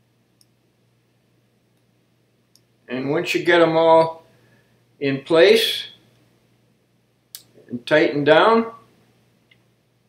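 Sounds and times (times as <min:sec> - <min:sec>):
steady low hum: 0:00.0 - 0:10.0
faint click: 0:00.4 - 0:00.6.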